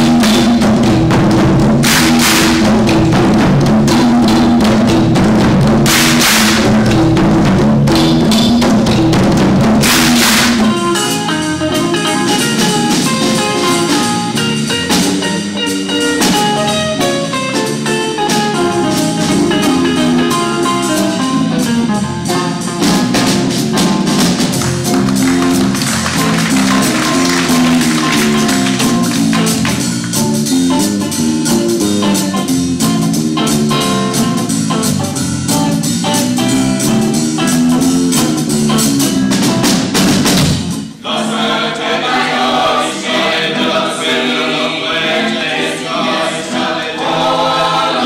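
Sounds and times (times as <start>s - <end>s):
hand drums beating: 0.0s - 20.2s, 22.6s - 32.3s
live jazz combo playing: 0.0s - 48.0s.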